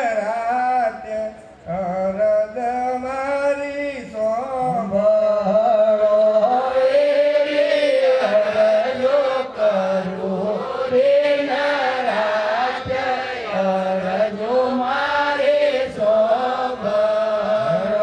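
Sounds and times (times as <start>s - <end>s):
person singing a devotional chant: 0.0s - 18.0s.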